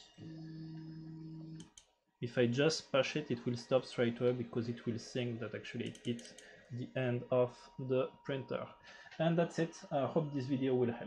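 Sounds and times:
stepper motors humming: 0:00.2 - 0:01.6.

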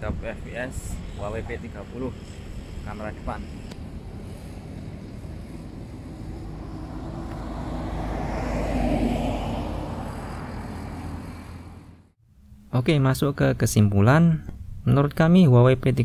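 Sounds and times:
vehicle passing: 0:00.9 - 0:12.2.

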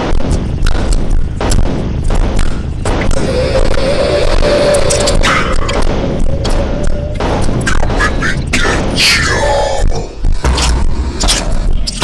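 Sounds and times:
heavy booms: 0:00.0 - 0:11.8
deep rumble: 0:00.0 - 0:12.0
long screeching tone: 0:03.2 - 0:07.2.

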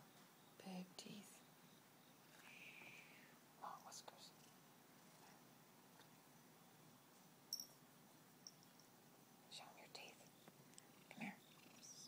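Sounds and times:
faint whispering: 0:00.6 - 0:01.4, 0:02.3 - 0:05.4, 0:09.5 - 0:12.0.

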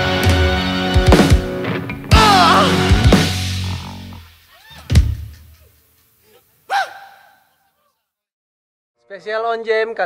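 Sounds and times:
man shouting: 0:02.1 - 0:03.0, 0:06.7 - 0:07.5.

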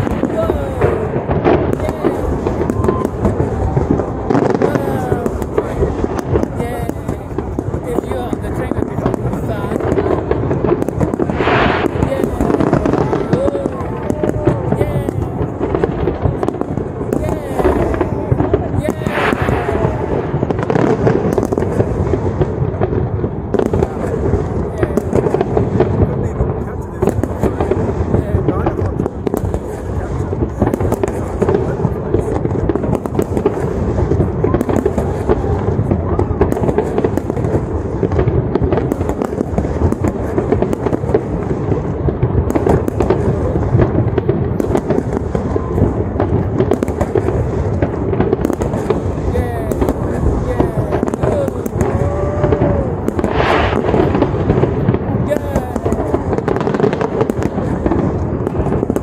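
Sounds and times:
fireworks banging and crackling: 0:00.0 - 0:59.0.

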